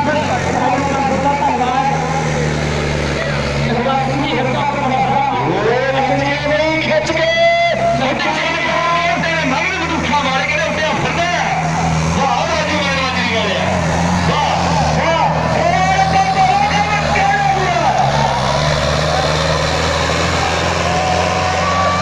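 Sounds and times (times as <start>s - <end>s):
men shouting: 0.0s - 22.0s
tractor engine under load: 0.0s - 22.0s.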